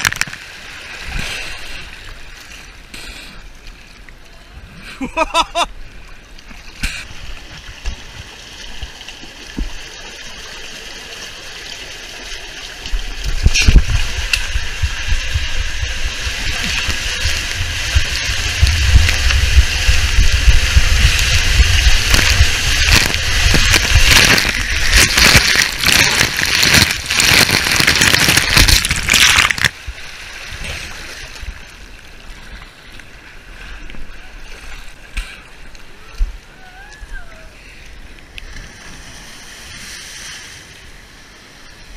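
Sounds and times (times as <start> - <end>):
water rushing and sloshing: 0.0 - 41.9
low rumble in enclosed tube: 13.2 - 25.2.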